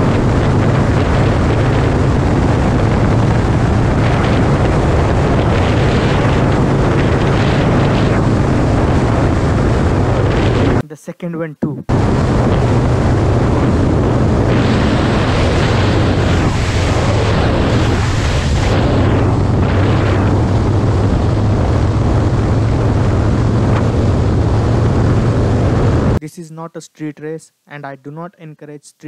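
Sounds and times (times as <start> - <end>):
motorcycle engine running: 0.0 - 10.8, 11.9 - 26.2
wind rush on microphone: 0.0 - 10.8, 11.9 - 26.2.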